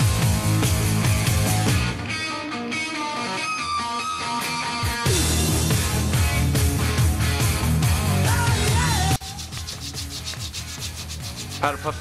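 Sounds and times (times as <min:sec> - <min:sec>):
sandpaper rubbing on wood: 0:09.2 - 0:12.0.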